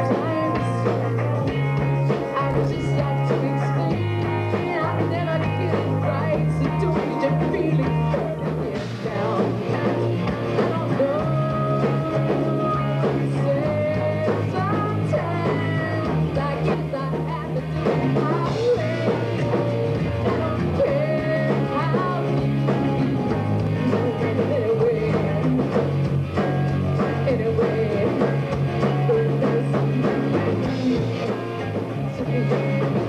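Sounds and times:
rock band playing: 0.0s - 33.0s
woman singing: 0.0s - 33.0s.

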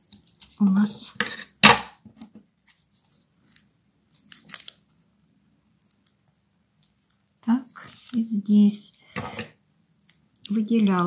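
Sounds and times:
paper rustling: 7.0s - 8.4s.

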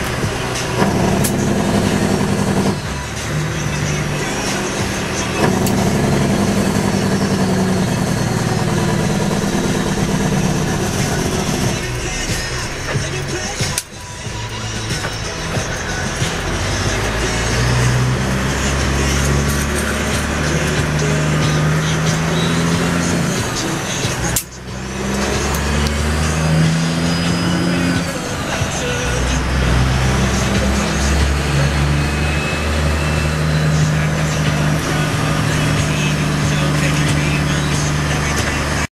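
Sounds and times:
diesel truck engine accelerating: 0.0s - 38.9s.

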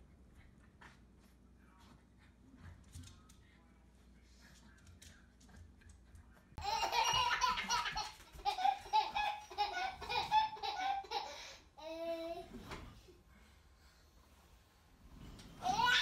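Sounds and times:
baby laughing: 6.6s - 12.5s, 15.6s - 16.0s.

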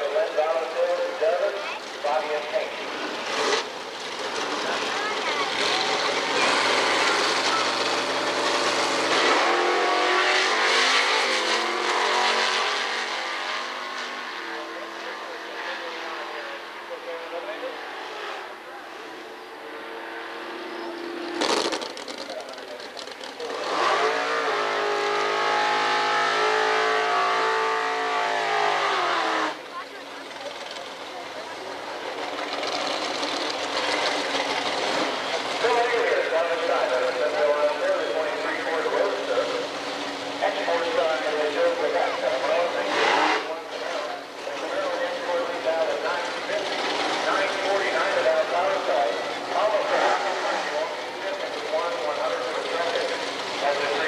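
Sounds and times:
racing car engine revving: 0.0s - 54.0s
rough engine sound: 0.0s - 54.0s.

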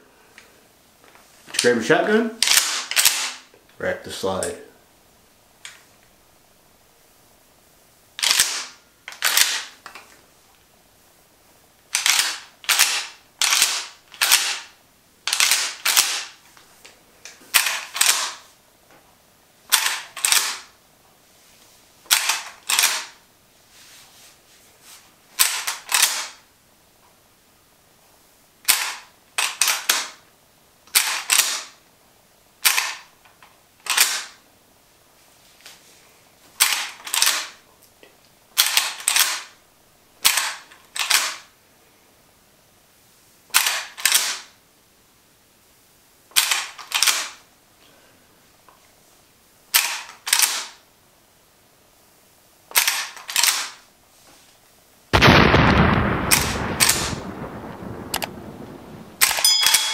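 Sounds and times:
gun actions clacking: 2.4s - 3.4s, 52.7s - 53.8s, 59.2s - 59.9s.

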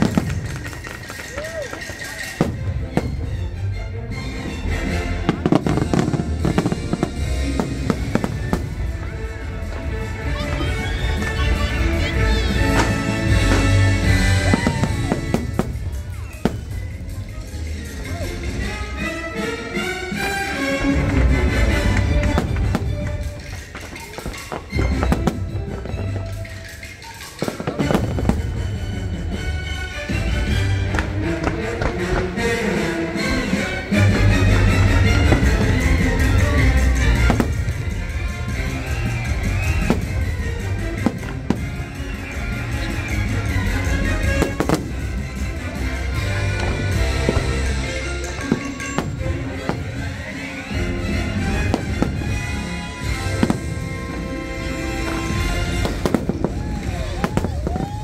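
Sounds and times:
fireworks bangs: 0.0s - 3.5s, 4.8s - 17.4s, 20.8s - 29.4s, 34.1s - 58.0s
show music: 0.0s - 58.0s.

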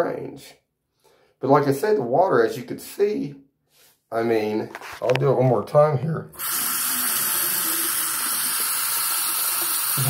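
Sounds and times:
tap water running into cup: 6.4s - 10.0s.

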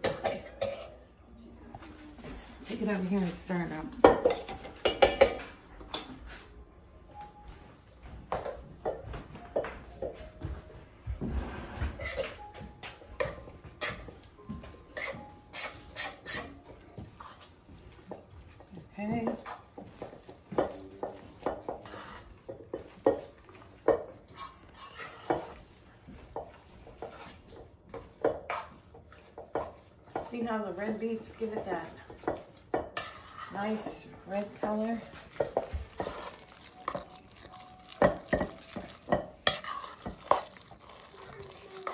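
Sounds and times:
metal spoon scraping steel bowl: 15.0s - 16.6s, 24.3s - 25.6s, 31.4s - 41.9s.

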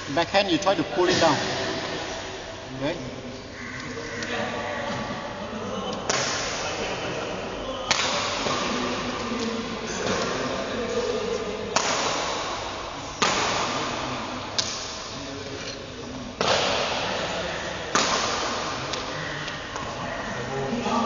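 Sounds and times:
racket hitting shuttlecock: 6.0s - 6.6s, 7.9s - 8.8s, 11.7s - 15.1s, 16.4s - 20.0s.

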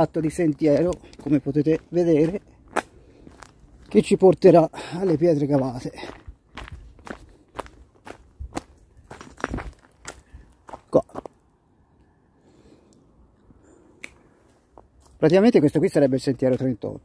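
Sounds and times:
footsteps on footpath: 0.0s - 11.4s.

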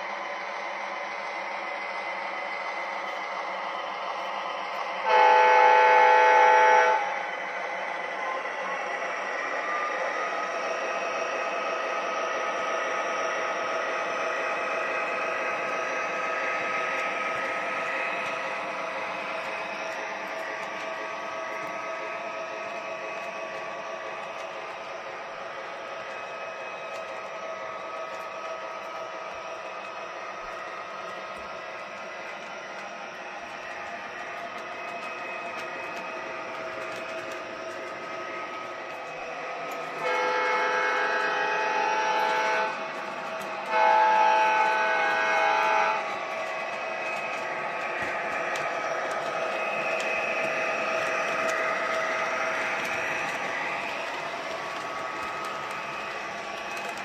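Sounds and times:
locomotive engine running: 0.0s - 57.0s
train rolling along track: 0.0s - 57.0s
locomotive horn blast: 5.0s - 7.1s, 40.0s - 42.8s, 43.6s - 46.0s.

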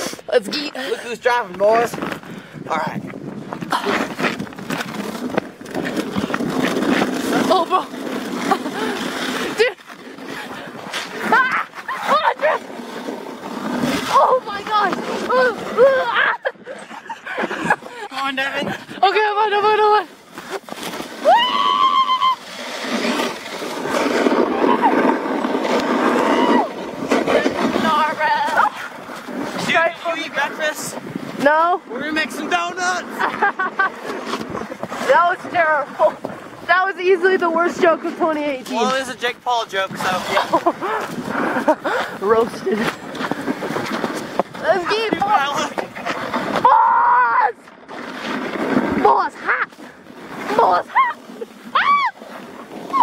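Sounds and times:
sled scraping over ice: 0.0s - 53.0s
people whooping and laughing: 11.3s - 12.6s, 15.3s - 18.0s, 21.2s - 22.5s, 24.4s - 25.1s, 26.2s - 26.8s, 50.5s - 52.2s.

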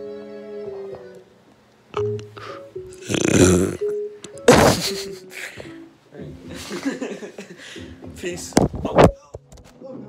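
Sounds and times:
faint piano music: 0.0s - 10.0s
harsh mouth noise on microphone: 2.9s - 4.9s.

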